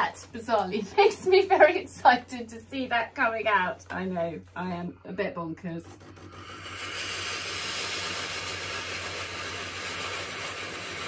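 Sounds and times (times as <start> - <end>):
steam iron hissing: 5.9 - 11.0.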